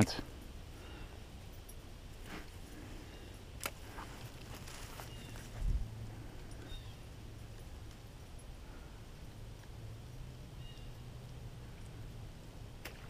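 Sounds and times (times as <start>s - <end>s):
light clicks and rustles: 3.6s - 9.8s.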